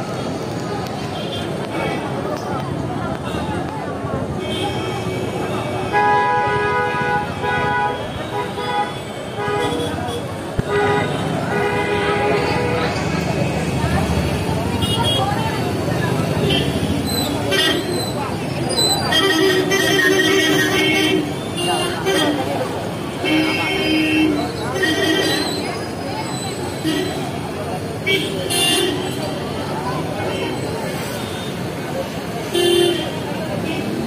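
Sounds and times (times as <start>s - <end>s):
crowd talking: 0.0s - 34.0s
motorbikes and cars passing: 8.9s - 34.0s.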